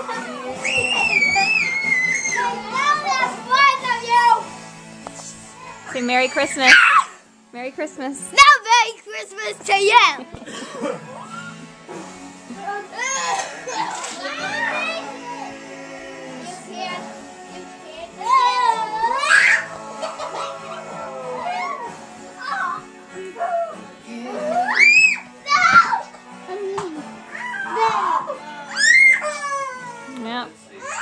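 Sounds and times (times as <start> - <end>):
background music: 0.0 - 31.0
toddler squealing: 0.6 - 2.6, 19.2 - 19.7, 24.5 - 26.0, 27.3 - 27.9, 28.7 - 30.1
child's excited shrill calls: 19.2 - 19.6, 24.7 - 26.0.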